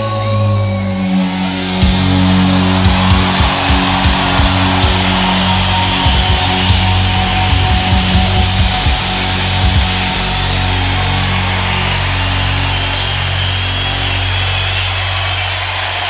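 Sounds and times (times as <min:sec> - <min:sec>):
band chord ringing: 0:00.0 - 0:16.0
large crowd cheering: 0:00.0 - 0:16.0.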